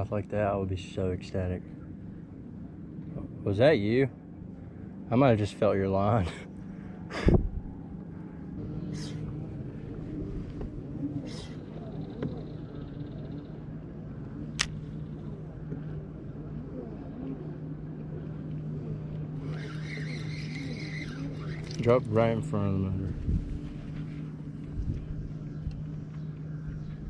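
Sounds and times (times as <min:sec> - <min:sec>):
electric trolling motor humming: 0:00.0 - 0:27.0
sharp click: 0:14.6 - 0:14.8.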